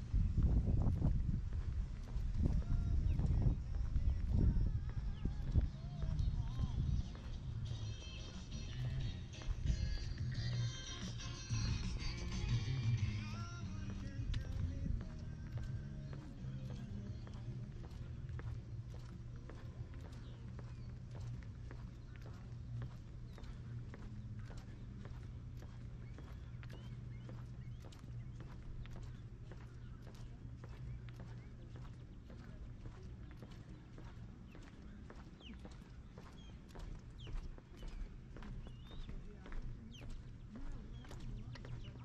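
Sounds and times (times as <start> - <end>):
steady low hum: 0.0 - 42.0
footsteps on concrete: 0.1 - 42.0
footsteps on wooden planks: 14.0 - 42.0.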